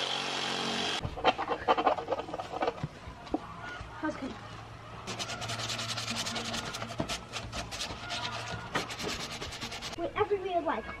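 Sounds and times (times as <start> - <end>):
sanding disc scraping plastic pipe: 1.2 - 2.8, 5.1 - 10.0.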